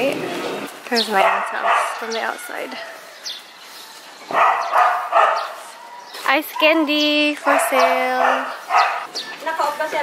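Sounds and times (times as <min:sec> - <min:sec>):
dog barking: 0:01.2 - 0:02.1, 0:04.3 - 0:05.6, 0:06.5 - 0:09.1.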